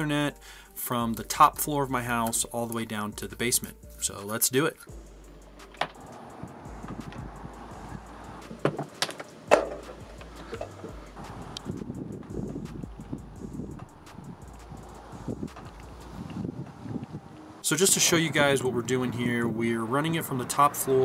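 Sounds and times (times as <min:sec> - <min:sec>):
sharp knocks of cable: 0:08.4 - 0:11.0
cable rustling and handling: 0:08.5 - 0:11.0.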